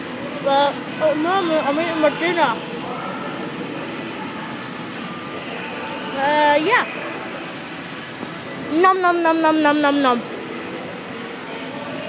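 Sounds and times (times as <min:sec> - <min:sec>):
indoor dining hall background noise: 0:00.0 - 0:12.0.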